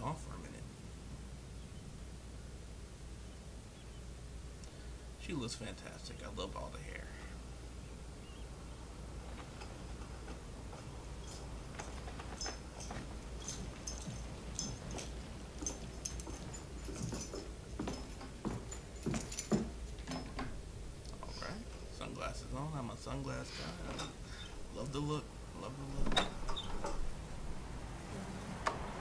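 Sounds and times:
objects being handled: 0:09.3 - 0:20.6.

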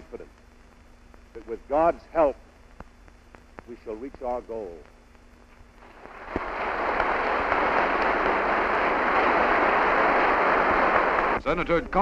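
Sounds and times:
audience applauding: 0:05.8 - 0:11.4.

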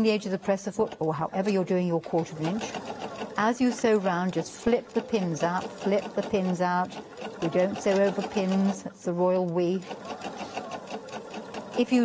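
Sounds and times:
sewing machine stitching: 0:00.0 - 0:12.0.

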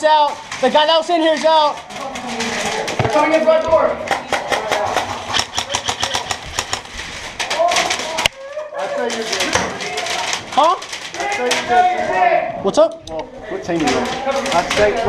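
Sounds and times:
voices shouting: 0:01.4 - 0:12.6
paintball markers firing: 0:04.2 - 0:07.0.

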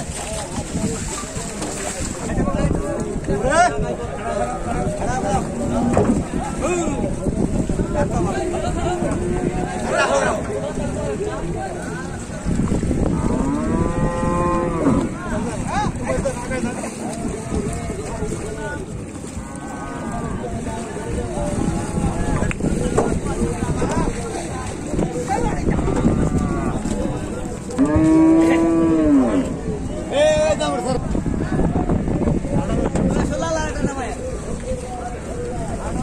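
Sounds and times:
cattle mooing: 0:05.4 - 0:06.3, 0:13.2 - 0:15.2, 0:25.8 - 0:27.1, 0:27.7 - 0:29.6.

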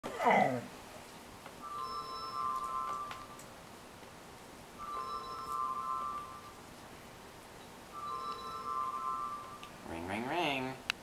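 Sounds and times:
chiming call ringtone: 0:01.6 - 0:03.4, 0:04.8 - 0:06.6, 0:07.9 - 0:09.6.

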